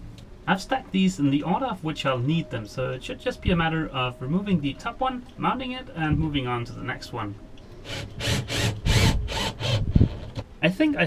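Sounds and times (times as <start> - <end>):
cordless drill driving screw: 7.8 - 10.4.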